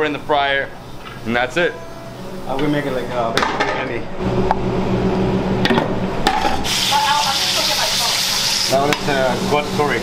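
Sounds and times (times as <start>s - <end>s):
onion sizzling in hot oil: 6.6s - 10.0s.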